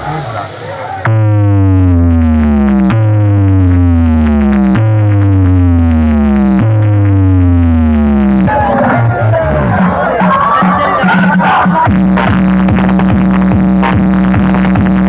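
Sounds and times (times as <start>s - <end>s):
loud electronic music: 0.0s - 15.0s
synthesizer bass sweep: 1.0s - 15.0s.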